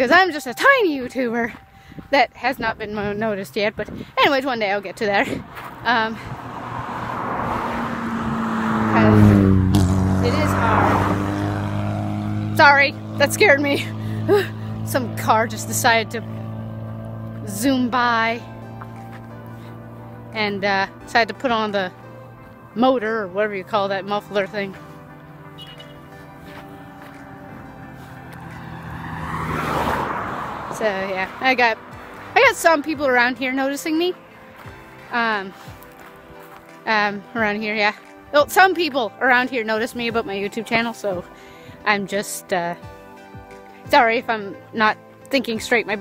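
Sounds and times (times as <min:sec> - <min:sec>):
car speeding past: 0:05.3 - 0:33.5.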